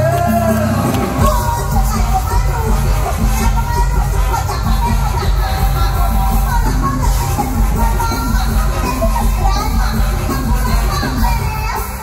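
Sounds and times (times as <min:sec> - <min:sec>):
heavy bass beat: 0:00.0 - 0:12.0
person singing: 0:00.0 - 0:12.0.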